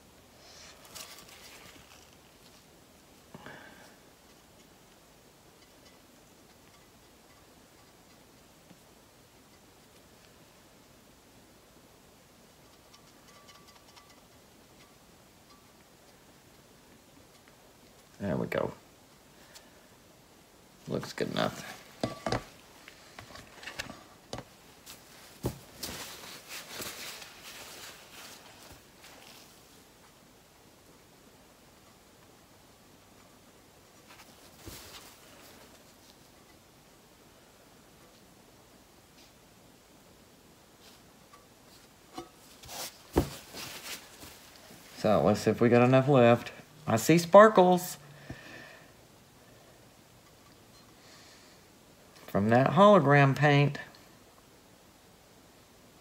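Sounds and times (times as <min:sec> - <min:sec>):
rustling: 0:00.0 - 0:11.0, 0:20.8 - 0:31.1, 0:32.9 - 0:38.3, 0:40.6 - 0:47.0
gloved hands rustling: 0:21.2 - 0:29.8, 0:41.7 - 0:45.1
dull thump: 0:43.1 - 0:43.6.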